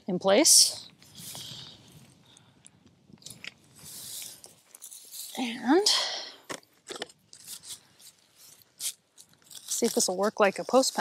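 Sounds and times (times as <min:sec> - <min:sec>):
dry hay rustling and crunching: 0:09.2 - 0:11.0.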